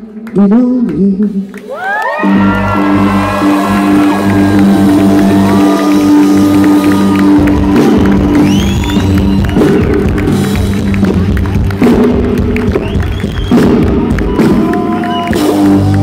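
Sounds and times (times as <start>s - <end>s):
audience cheering and whistling: 1.7s - 11.6s, 12.6s - 16.0s
live rock band playing: 2.2s - 16.0s.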